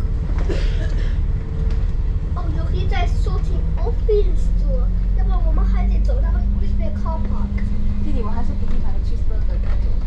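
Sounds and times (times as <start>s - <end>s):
bus engine and road rumble: 0.0s - 10.0s
passenger voices: 0.0s - 10.0s.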